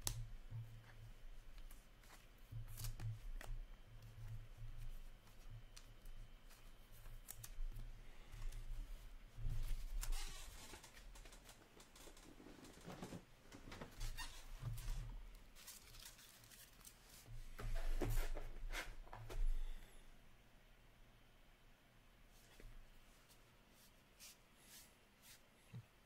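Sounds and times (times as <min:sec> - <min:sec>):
faint low hum: 0:00.0 - 0:26.0
packaging rustling and crinkling: 0:09.6 - 0:18.5.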